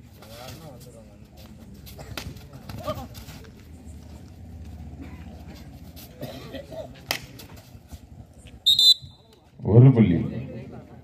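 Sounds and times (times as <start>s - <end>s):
low crowd murmur: 0.0s - 11.0s
referee's whistle blast: 8.7s - 9.3s.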